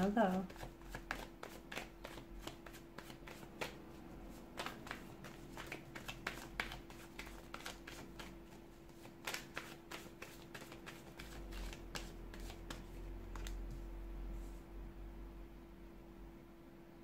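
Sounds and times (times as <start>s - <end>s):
cards being shuffled: 0.0s - 13.9s
faint steady hum: 0.0s - 17.0s.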